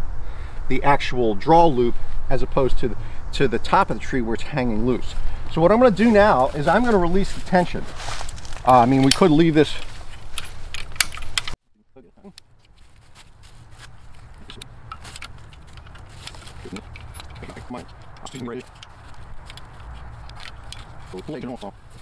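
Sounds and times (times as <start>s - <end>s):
rattling hardware: 8.3s - 11.6s, 14.4s - 21.7s.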